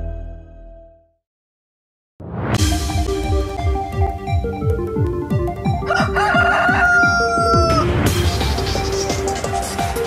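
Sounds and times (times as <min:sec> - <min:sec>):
electronic music with steady beat: 0:02.6 - 0:10.0
rooster crowing: 0:05.8 - 0:07.9.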